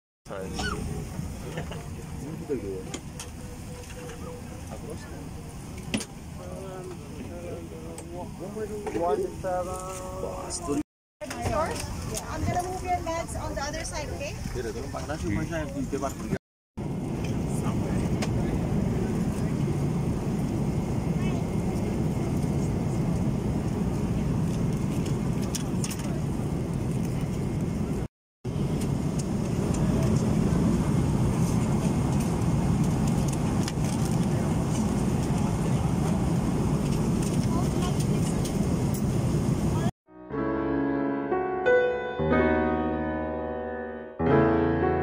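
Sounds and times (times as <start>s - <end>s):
airliner cabin engine rumble: 0.3s - 13.6s, 15.8s - 39.9s
piano music: 40.1s - 45.0s.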